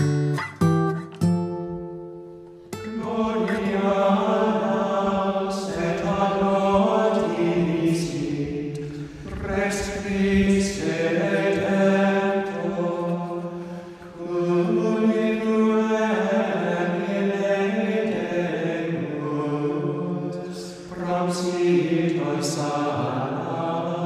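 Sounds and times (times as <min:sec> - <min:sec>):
voices singing slow chant: 0:02.8 - 0:24.0.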